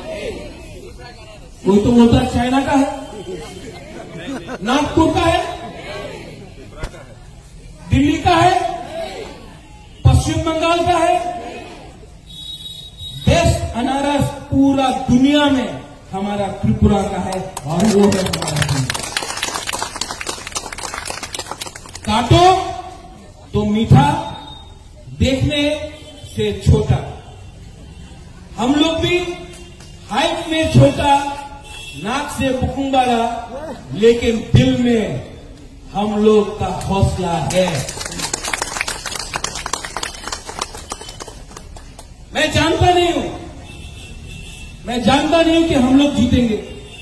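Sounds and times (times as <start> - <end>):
people clapping: 17.2 - 22.4, 36.7 - 42.3.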